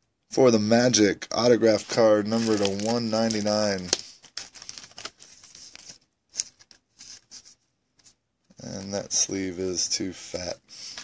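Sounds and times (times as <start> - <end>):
plastic sleeve rustling and scraping: 1.4 - 9.5, 10.8 - 11.0.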